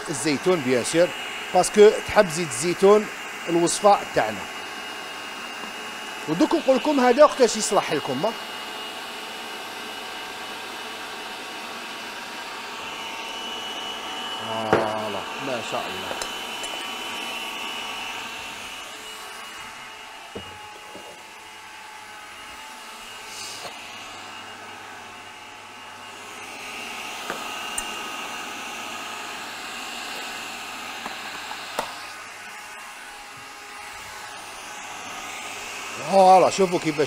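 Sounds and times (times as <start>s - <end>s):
food processor running: 0.0s - 37.0s.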